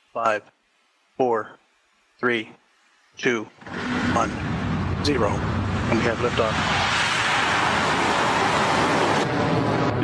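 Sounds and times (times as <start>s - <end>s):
rocket engines roaring at liftoff: 3.2s - 10.0s.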